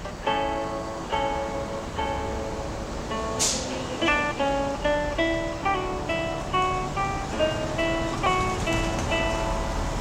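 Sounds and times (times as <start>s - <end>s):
fingerpicked acoustic guitar: 0.0s - 10.0s.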